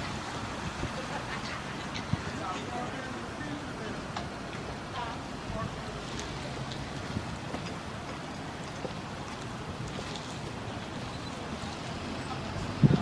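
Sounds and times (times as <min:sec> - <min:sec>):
street noise hiss: 0:00.0 - 0:13.0
traffic rumble: 0:00.0 - 0:13.0
faint distant voices: 0:00.1 - 0:13.0.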